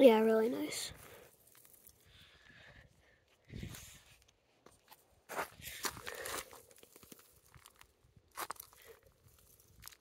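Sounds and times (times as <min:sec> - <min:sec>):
footsteps crunching on gravel: 0:04.6 - 0:10.0.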